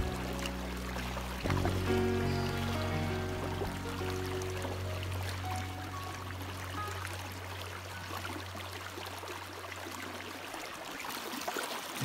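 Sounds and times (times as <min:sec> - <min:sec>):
creek water running: 0:00.0 - 0:12.0.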